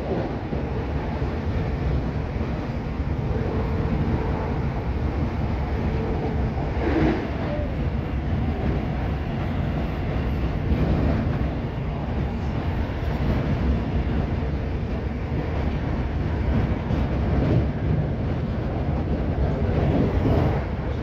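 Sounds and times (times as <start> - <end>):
train wheels rumbling on rail: 0.0 - 21.0.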